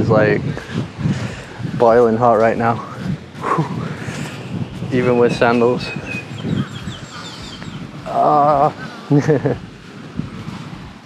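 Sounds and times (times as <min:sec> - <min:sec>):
bird calling: 0:02.1 - 0:09.8.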